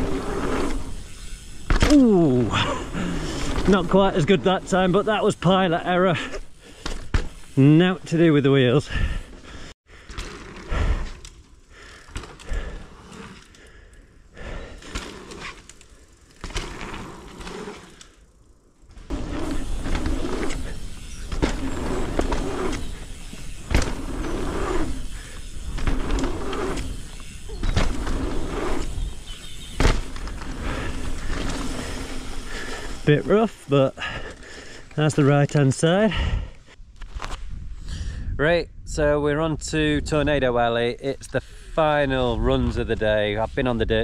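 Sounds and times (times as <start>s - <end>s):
bike tyres rolling on dirt: 0.0s - 44.0s
bike landing knocks and rattles: 6.7s - 7.5s, 16.4s - 17.6s, 18.9s - 33.0s
wind on microphone: 37.4s - 39.1s.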